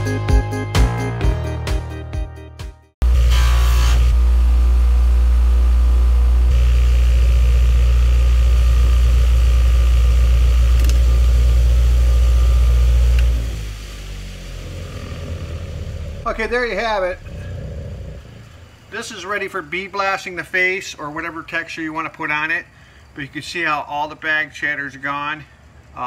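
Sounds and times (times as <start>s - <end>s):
bench grinder motor humming: 3.0s - 18.6s.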